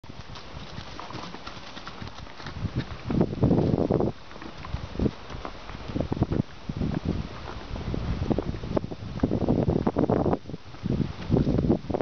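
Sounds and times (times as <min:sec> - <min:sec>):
hoofbeats on dirt: 0:00.0 - 0:12.0.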